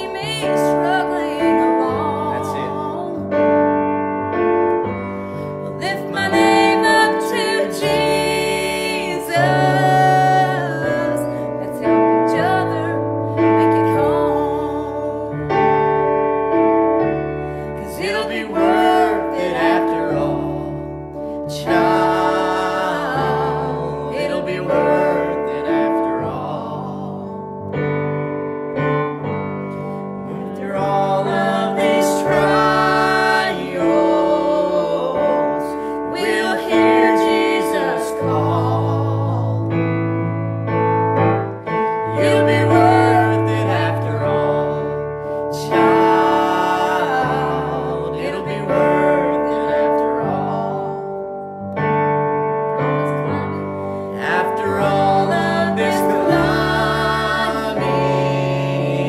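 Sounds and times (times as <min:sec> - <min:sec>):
man and woman singing gospel: 0:00.0 - 0:03.4, 0:05.6 - 0:15.6, 0:17.6 - 0:27.5, 0:30.2 - 0:39.9, 0:41.9 - 0:51.2, 0:53.1 - 0:59.0
electric keyboard chords: 0:00.0 - 0:59.0.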